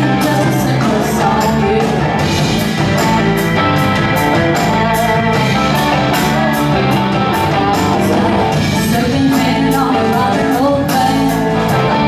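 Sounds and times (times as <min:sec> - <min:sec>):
bass guitar: 0:00.0 - 0:12.0
drum kit: 0:00.0 - 0:12.0
electric guitars: 0:00.0 - 0:12.0
organ: 0:00.0 - 0:12.0
piano: 0:00.0 - 0:12.0.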